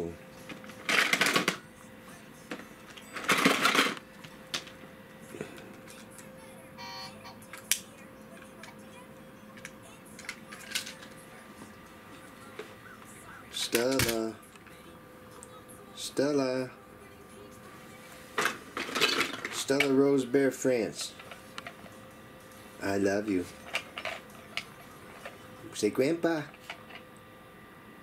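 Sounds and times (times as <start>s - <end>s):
plastic toys clattering: 0.7s - 1.6s, 2.5s - 4.8s, 9.6s - 11.2s, 13.6s - 14.2s, 18.4s - 19.9s, 23.6s - 25.4s.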